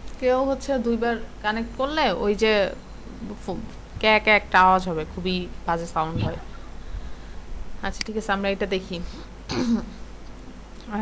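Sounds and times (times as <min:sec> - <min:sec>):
person speaking: 0:01.5 - 0:06.6
person clearing throat: 0:09.5 - 0:10.0.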